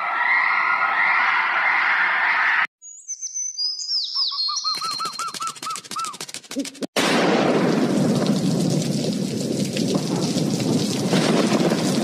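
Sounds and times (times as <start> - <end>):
heavy rain: 7.2 - 12.0.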